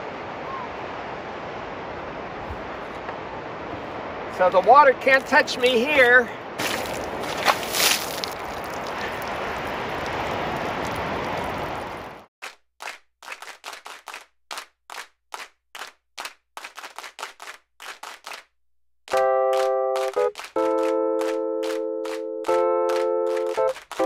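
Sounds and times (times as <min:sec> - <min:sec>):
water splashing over head: 0:06.6 - 0:12.2.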